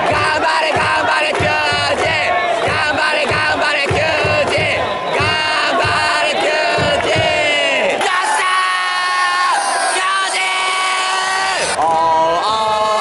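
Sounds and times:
drum beat: 0.0 - 7.9
crowd chanting in unison: 0.0 - 11.8.

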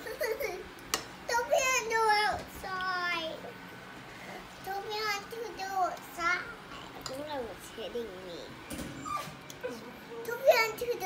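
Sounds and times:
young child's voice: 1.3 - 3.6, 4.6 - 8.5, 10.2 - 11.0.

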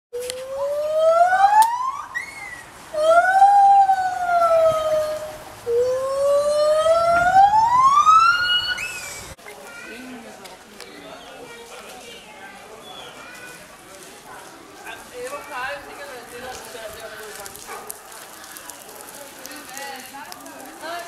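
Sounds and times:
gibbon whooping song: 0.5 - 9.3.

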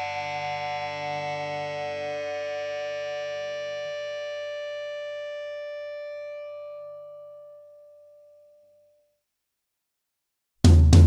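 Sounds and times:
electric guitar chord ringing: 0.0 - 8.2.

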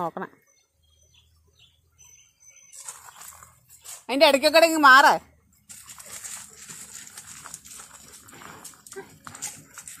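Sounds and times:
paws scuffing on gravel: 2.7 - 4.1, 5.6 - 10.0
dog sniffing: 5.7 - 10.0.

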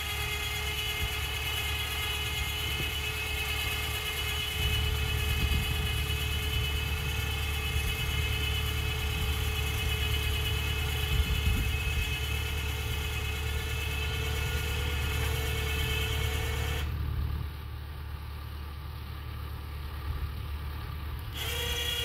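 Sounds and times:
steady whine: 0.0 - 17.9
diesel engine running: 0.0 - 22.0.

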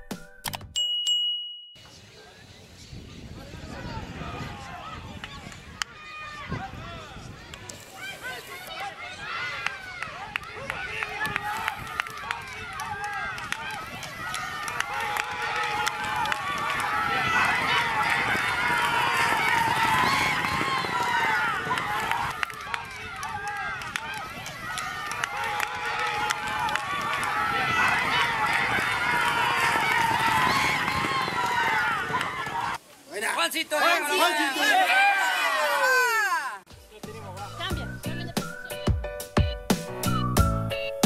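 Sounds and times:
crowd shouting and cheering: 3.1 - 38.9.

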